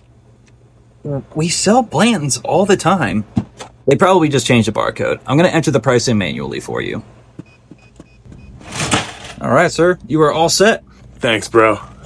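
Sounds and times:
faint beep tone: 7.4s - 8.6s.

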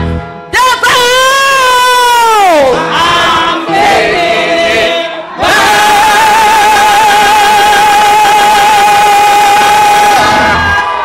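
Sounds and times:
gospel choir holding a note: 2.5s - 10.7s.

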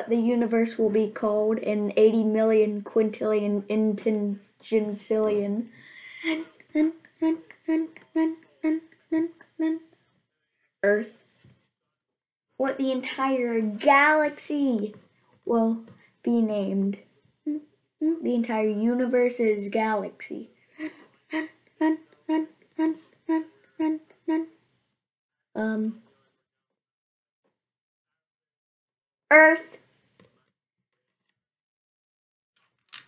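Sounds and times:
boy speaking: 0.0s - 9.9s, 10.8s - 11.2s, 12.6s - 24.6s, 25.6s - 26.0s, 29.3s - 29.8s
boy humming short notes: 6.2s - 9.9s, 21.3s - 24.5s.

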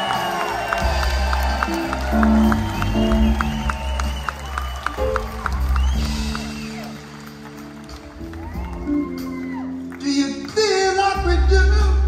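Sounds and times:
bass guitar: 0.0s - 12.0s
keyboard notes: 0.6s - 12.0s.

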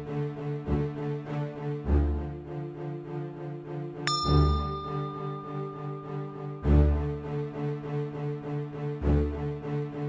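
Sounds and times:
background music with bass note: 0.0s - 10.0s
bright bell-like ding: 4.1s - 7.2s.

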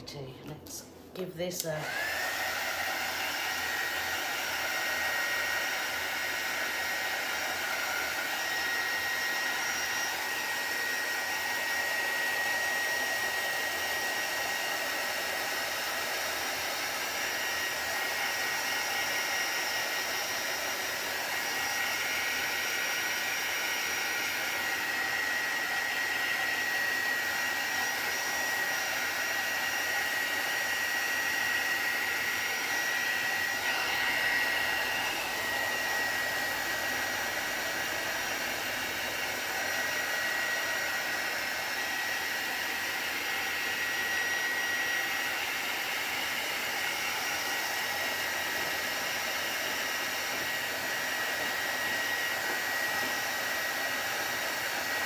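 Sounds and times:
heat gun running: 1.2s - 55.0s.

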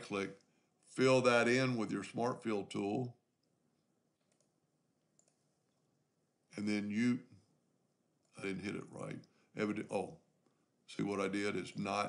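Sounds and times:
faint computer mouse click: 4.2s - 4.6s, 5.2s - 5.4s.

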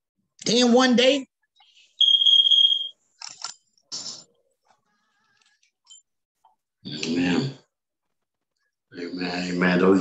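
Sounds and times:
high-pitched timer beep: 2.0s - 3.0s.

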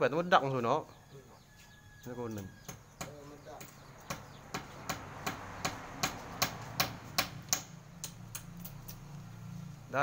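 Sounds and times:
tool tapping concrete blocks: 2.3s - 9.0s.

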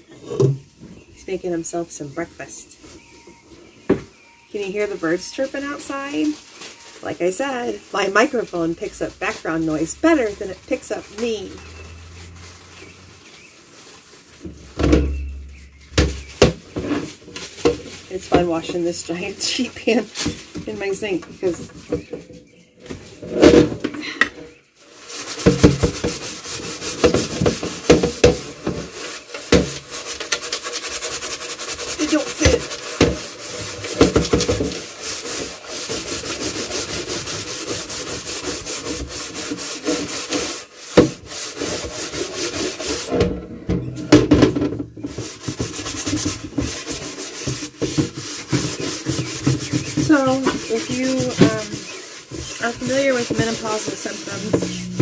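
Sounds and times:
scourer scrubbing metal pan: 7.1s - 13.4s, 25.0s - 55.0s.

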